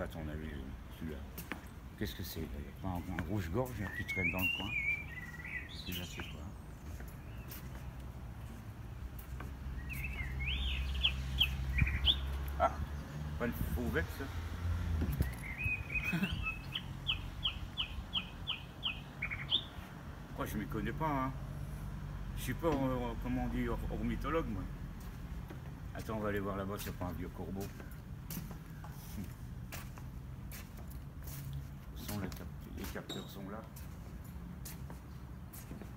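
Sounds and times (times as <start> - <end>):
bird song: 0.0 - 14.4, 15.0 - 21.4, 25.5 - 29.9, 32.0 - 34.0
footsteps on wooden decking: 0.7 - 12.7, 14.5 - 15.8, 24.7 - 35.9.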